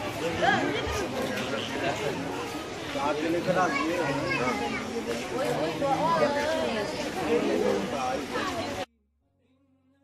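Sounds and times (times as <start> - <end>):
people talking at once: 0.0 - 8.9
children's voices: 1.9 - 8.9.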